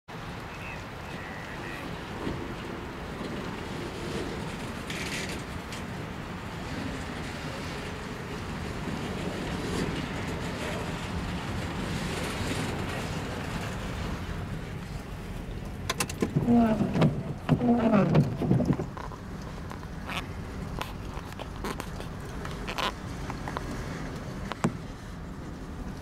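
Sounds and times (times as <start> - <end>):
train wheels rumbling on rails: 0.6 - 26.0.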